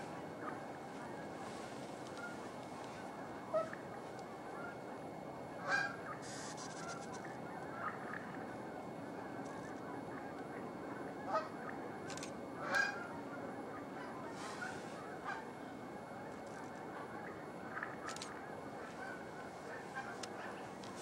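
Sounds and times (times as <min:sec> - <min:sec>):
steady hiss: 0:06.1 - 0:07.3.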